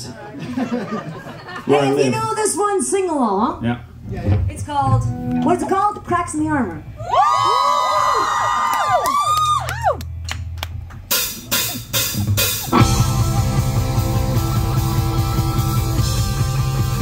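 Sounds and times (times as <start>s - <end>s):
drum hits: 4.1s - 6.2s, 11.1s - 17.0s
rock band playing: 4.3s - 7.0s, 10.1s - 17.0s
sliding guitar notes: 4.7s - 6.9s, 11.1s - 17.0s.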